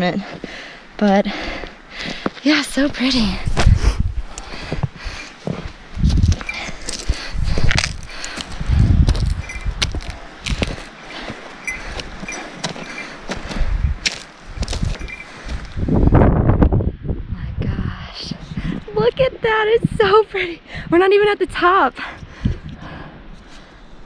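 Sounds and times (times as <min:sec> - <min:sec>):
footsteps crunching in snow: 0:02.0 - 0:15.8.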